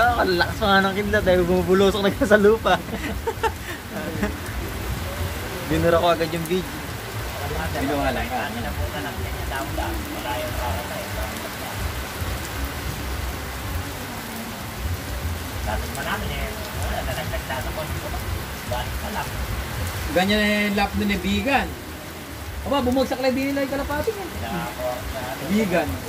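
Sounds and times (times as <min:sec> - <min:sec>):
man speaking: 0:00.0 - 0:03.2, 0:03.9 - 0:11.9, 0:20.1 - 0:21.8, 0:22.6 - 0:26.0
steady rain on roofs: 0:00.0 - 0:26.0
faint voices: 0:01.5 - 0:20.0.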